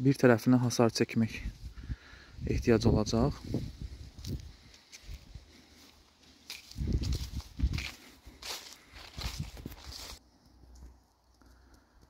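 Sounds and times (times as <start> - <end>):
footsteps on dry leaves: 3.5 - 10.2.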